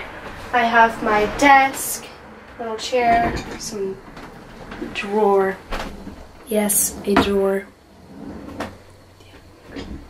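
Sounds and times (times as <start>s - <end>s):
desk drawer sliding: 2.9s - 10.0s.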